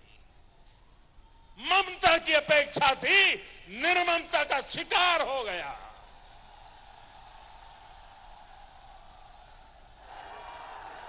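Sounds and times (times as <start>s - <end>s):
faint hiss and hum: 0.0s - 11.0s.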